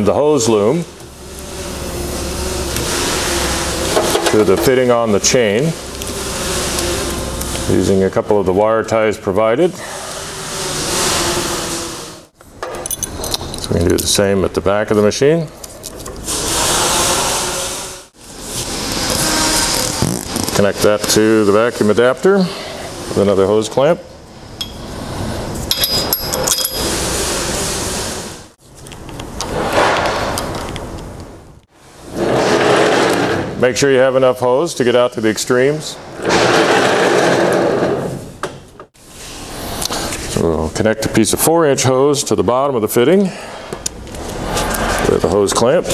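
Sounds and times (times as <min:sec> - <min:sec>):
plastic hose rubbing and scraping: 0:01.0 - 0:08.3, 0:15.6 - 0:22.1, 0:32.1 - 0:33.7, 0:36.2 - 0:38.2, 0:44.0 - 0:45.9
metal chain clinking: 0:12.8 - 0:13.8, 0:25.7 - 0:27.0.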